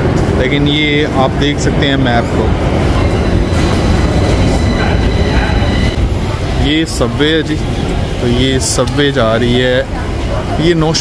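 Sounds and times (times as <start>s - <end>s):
metro train rumbling with whine: 0.0s - 11.0s.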